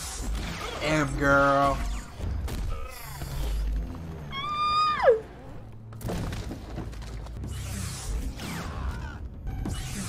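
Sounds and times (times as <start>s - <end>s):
woman squealing: 4.3s - 5.2s.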